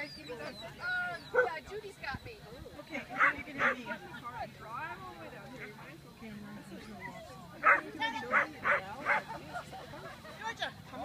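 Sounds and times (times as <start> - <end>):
dog barking: 3.2 - 3.8, 7.6 - 9.2.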